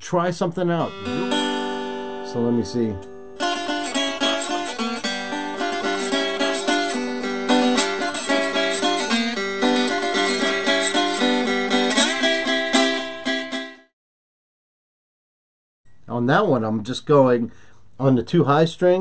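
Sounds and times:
slide guitar blues riff: 0:00.8 - 0:13.8.

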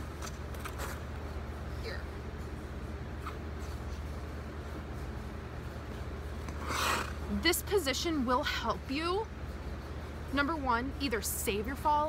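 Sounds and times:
low hum of ice rink: 0:00.0 - 0:12.0
skate blades scraping ice: 0:00.2 - 0:01.2, 0:06.4 - 0:07.3.

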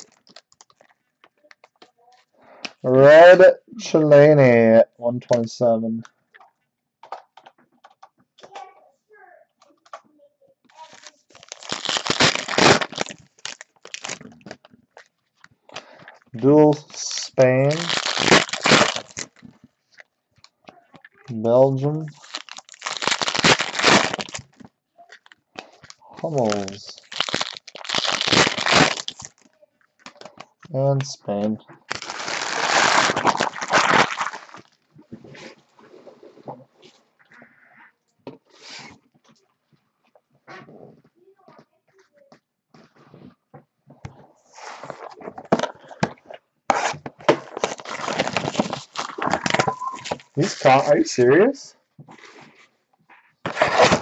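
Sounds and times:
trading cards and packaging crinkling: 0:00.0 - 0:02.9, 0:10.7 - 0:34.8, 0:44.6 - 0:52.6, 0:53.3 - 0:54.0.

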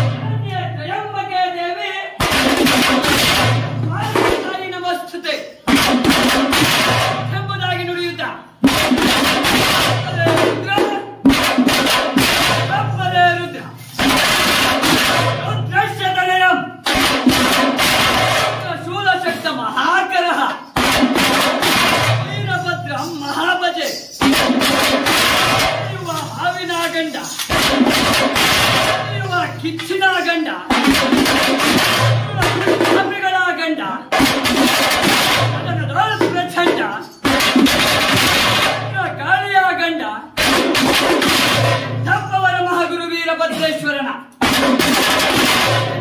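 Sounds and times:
fast loud drumming: 0:00.0 - 0:43.8, 0:44.4 - 0:46.0.

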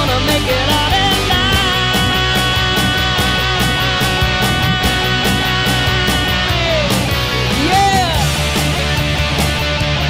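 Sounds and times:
heavy rock music with electric guitar: 0:00.0 - 0:10.0.

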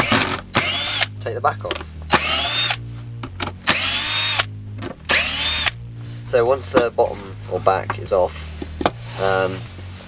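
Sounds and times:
drill motor whining: 0:00.0 - 0:01.1, 0:02.1 - 0:02.8, 0:03.6 - 0:04.5, 0:05.1 - 0:05.8.

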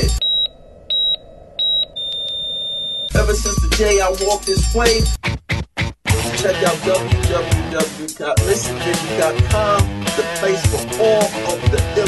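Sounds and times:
long steady flatline tone: 0:00.0 - 0:03.3
short high electronic beeps: 0:00.0 - 0:04.6.

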